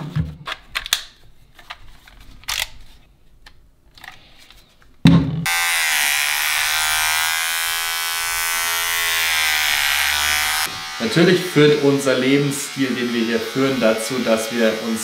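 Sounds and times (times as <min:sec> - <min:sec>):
hair clipper buzzing: 0:05.4 - 0:15.0.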